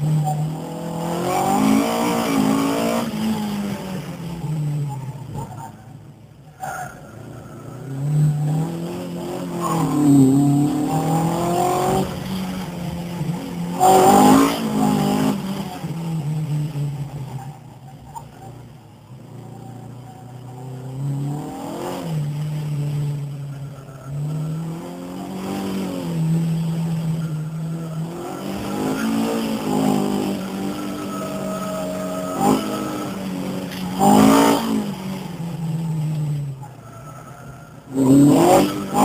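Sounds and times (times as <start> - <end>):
racing engine revving: 0.0 - 5.7, 7.1 - 17.2, 19.4 - 39.0.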